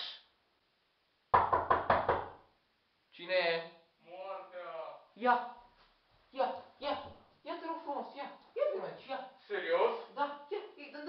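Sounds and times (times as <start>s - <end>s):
knocking on a door: 1.3s - 2.5s.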